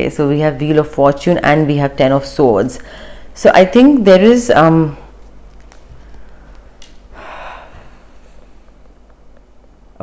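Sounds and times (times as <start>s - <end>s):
short breath: 2.8s - 3.3s, 7.2s - 8.5s.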